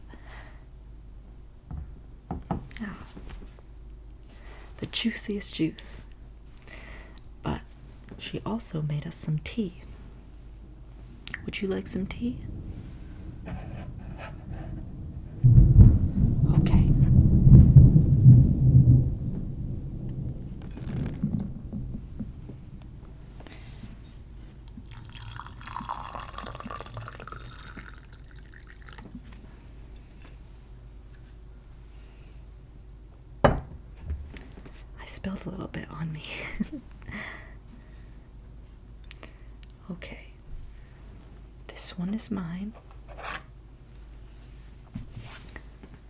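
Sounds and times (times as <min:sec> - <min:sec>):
soft knock: 0:01.7 - 0:02.7, 0:33.4 - 0:34.2.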